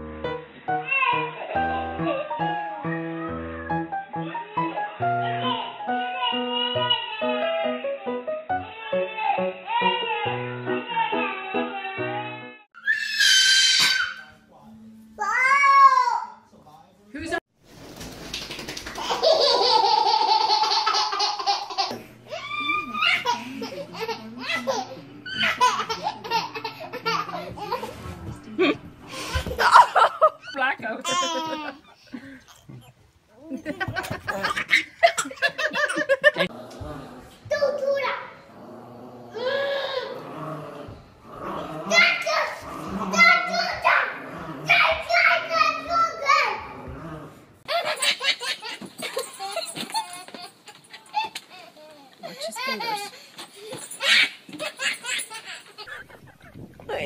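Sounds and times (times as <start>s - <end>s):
toddler crying out: 0.8s - 2.4s, 4.5s - 14.3s, 22.3s - 23.4s, 39.3s - 40.4s
babies squealing and laughing: 12.8s - 14.4s, 19.0s - 23.6s, 39.3s - 40.2s, 47.7s - 56.6s
people laughing: 31.0s - 32.4s, 33.5s - 36.5s, 52.2s - 53.2s.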